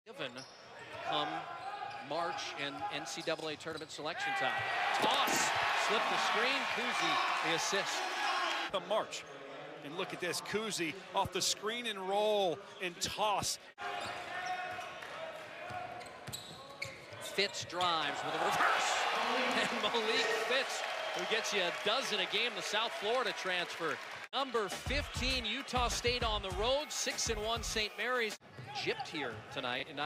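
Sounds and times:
commentator speaking: 17.5s - 30.0s.

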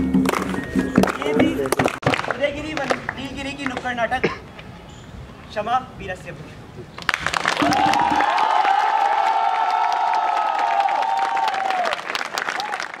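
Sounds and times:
audience applause: 7.1s - 13.0s
crowd cheering: 7.1s - 13.0s.

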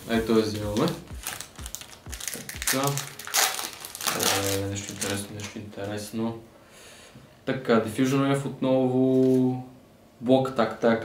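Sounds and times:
person speaking: 0.0s - 6.4s
foil wrapper crinkling: 0.5s - 5.6s
foil wrapper tearing: 0.8s - 5.6s.

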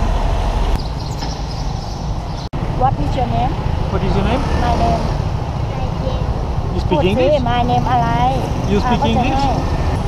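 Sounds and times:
vehicle engines rumbling: 0.0s - 10.0s.

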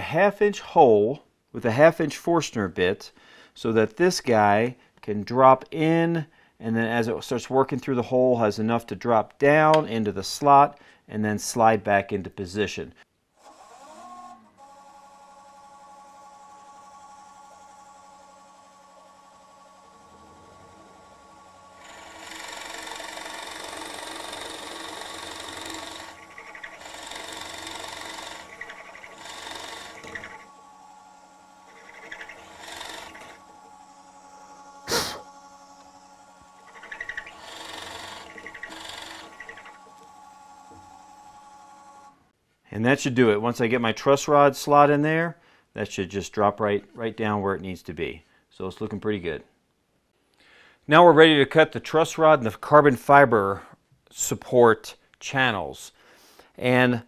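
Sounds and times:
drill press motor humming: 13.4s - 42.2s
drill bit cutting wood: 15.5s - 41.9s.

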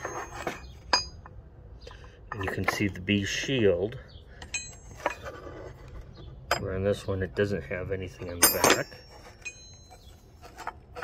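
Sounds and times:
wrenches clinking: 0.0s - 3.8s, 4.4s - 7.1s, 8.1s - 11.0s.

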